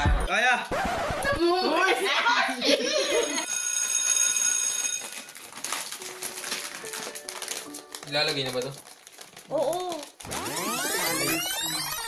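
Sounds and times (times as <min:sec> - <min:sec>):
people laughing: 0:01.3 - 0:03.5
high steady ringing tone: 0:03.2 - 0:05.3
people talking: 0:10.8 - 0:12.0.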